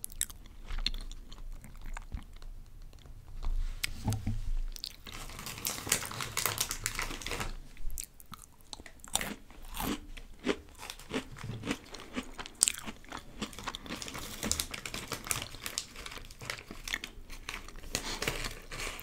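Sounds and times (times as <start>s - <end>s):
chewing and crunching snacks: 0.0s - 3.6s, 4.7s - 19.0s.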